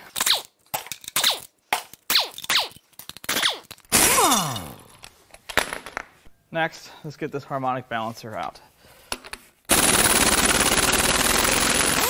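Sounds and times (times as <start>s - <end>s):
pneumatic impact wrench bursts: 3.9s - 4.3s, 9.7s - 12.0s.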